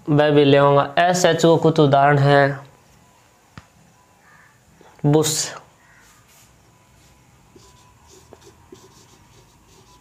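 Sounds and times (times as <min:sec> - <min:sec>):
marker writing on whiteboard: 0:06.0 - 0:10.0.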